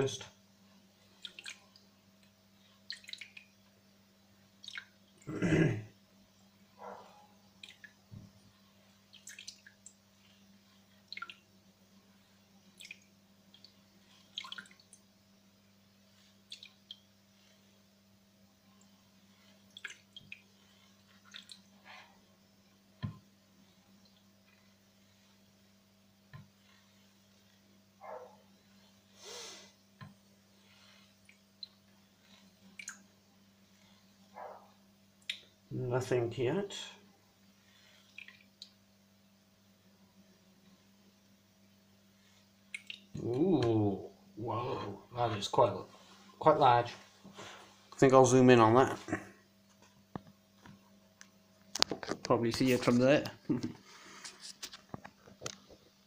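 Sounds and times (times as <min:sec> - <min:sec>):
steady low hum: 0:00.0 - 0:56.0
water drips and splashes: 0:01.2 - 0:01.9, 0:02.8 - 0:03.5, 0:04.6 - 0:05.0, 0:07.6 - 0:08.0, 0:09.1 - 0:10.0, 0:11.0 - 0:11.5, 0:12.8 - 0:15.1, 0:16.4 - 0:17.1, 0:19.5 - 0:21.8, 0:31.2 - 0:33.1, 0:37.9 - 0:38.8, 0:42.7 - 0:43.2.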